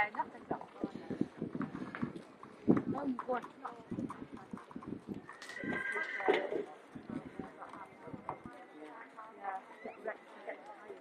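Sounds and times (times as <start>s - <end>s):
people talking indistinctly: 0.0s - 11.0s.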